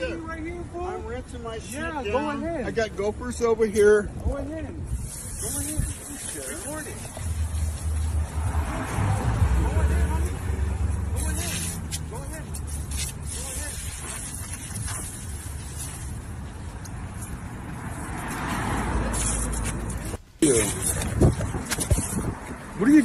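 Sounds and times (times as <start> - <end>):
garden hose water spray: 4.8 - 19.8.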